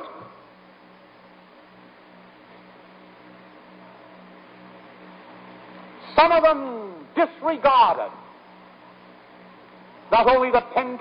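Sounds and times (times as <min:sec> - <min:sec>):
faint low hum: 0:00.0 - 0:11.0
recording hiss: 0:00.0 - 0:11.0.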